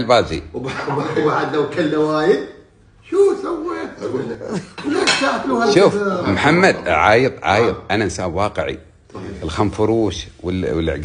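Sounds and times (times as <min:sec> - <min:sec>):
men's voices: 0:00.0 - 0:07.9
plate clinking against dishes: 0:04.9 - 0:05.5.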